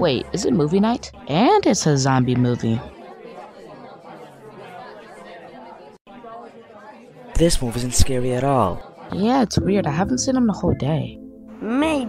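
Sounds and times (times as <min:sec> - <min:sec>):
chatter of many voices: 0:00.0 - 0:10.1.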